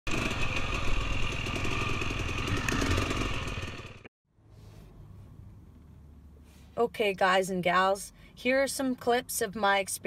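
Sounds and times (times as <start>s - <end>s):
dirt bike engine running: 0.1s - 4.1s.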